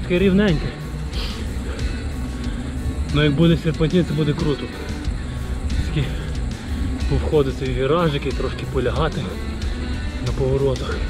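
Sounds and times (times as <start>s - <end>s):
wind and road noise: 0.0s - 11.0s.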